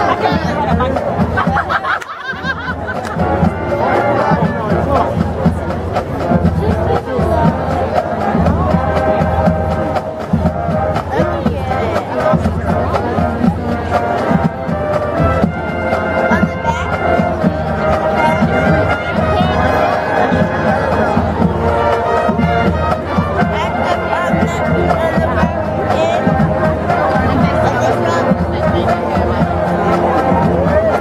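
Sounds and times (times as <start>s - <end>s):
marching band playing: 0.0s - 31.0s
steady drumbeat: 0.0s - 31.0s.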